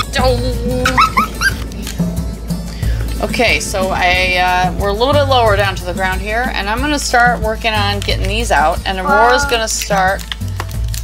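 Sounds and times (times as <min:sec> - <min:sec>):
background music: 0:00.0 - 0:11.0
high-pitched laugh: 0:00.8 - 0:01.6.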